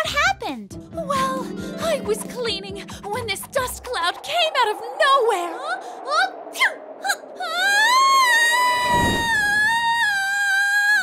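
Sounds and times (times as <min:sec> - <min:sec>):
brief rushing noise: 0:08.7 - 0:09.9.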